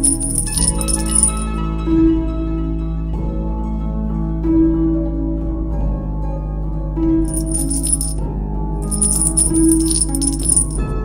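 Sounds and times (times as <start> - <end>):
rattle shaking: 0.0 - 1.5, 7.3 - 8.2, 8.8 - 10.8
instrumental background music: 0.0 - 11.0.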